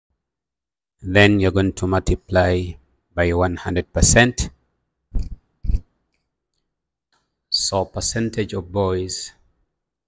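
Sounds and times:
stylus tapping on screen: 0:05.1 - 0:06.3.

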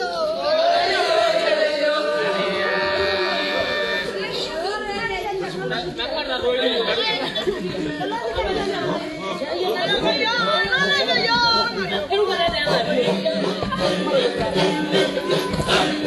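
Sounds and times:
people chattering: 0:00.0 - 0:16.0.

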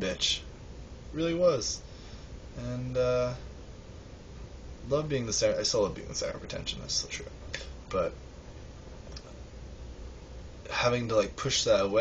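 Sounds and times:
man speaking: 0:00.0 - 0:00.5, 0:01.1 - 0:01.8, 0:02.6 - 0:03.5, 0:04.8 - 0:08.2, 0:10.7 - 0:12.0
low room hum: 0:00.0 - 0:12.0.

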